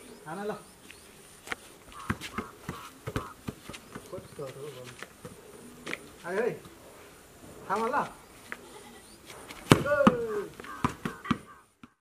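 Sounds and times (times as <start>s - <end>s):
ball bouncing knocks: 2.0s - 4.5s, 9.6s - 12.0s
ball kicked with thud: 9.6s - 11.9s
person calling out: 9.8s - 11.6s.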